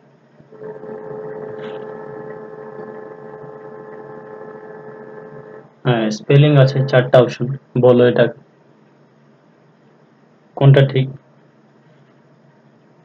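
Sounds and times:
steady humming tone: 0.0 - 13.0.

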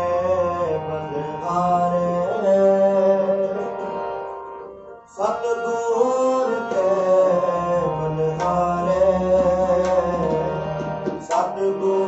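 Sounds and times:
harmonium melody: 0.0 - 12.0
tabla drumming: 8.3 - 12.0.

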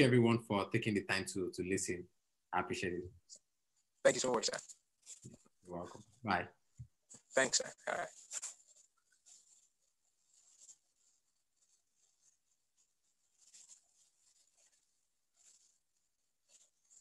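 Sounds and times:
faint rustling: 6.9 - 17.0.

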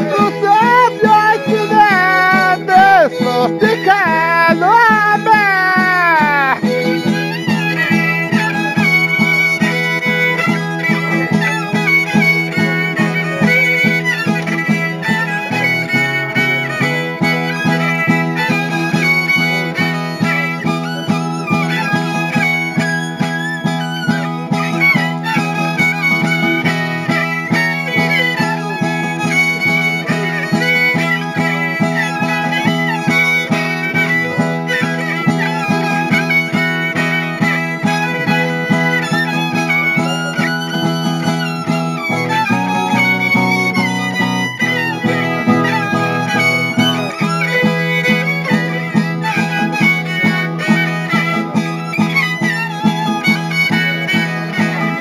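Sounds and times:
strummed string chords: 0.0 - 55.0
violin playing busy melody: 0.0 - 55.0.

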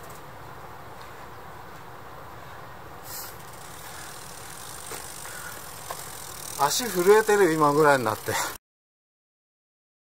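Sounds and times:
short hiss: 3.0 - 6.2.

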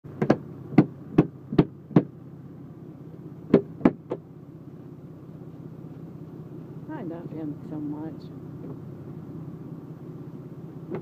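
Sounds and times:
low hum in car: 0.1 - 11.0
knocks on car windshield: 0.2 - 2.1, 3.5 - 4.2.

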